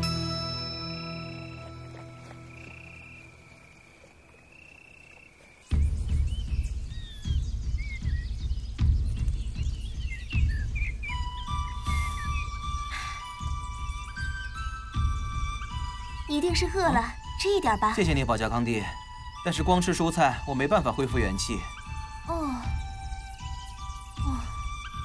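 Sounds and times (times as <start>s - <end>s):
light chiming music: 0.0s - 3.6s, 10.9s - 25.0s
high chirping calls: 1.2s - 25.0s
frogs croaking: 1.8s - 6.0s.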